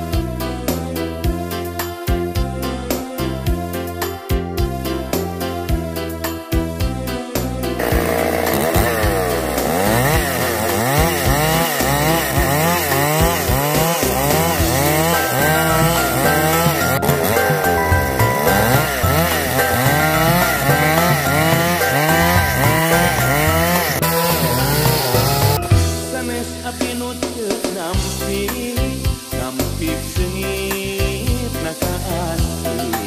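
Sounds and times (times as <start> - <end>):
background music: 0.0 - 33.0
chainsaw cutting wood: 7.8 - 25.8.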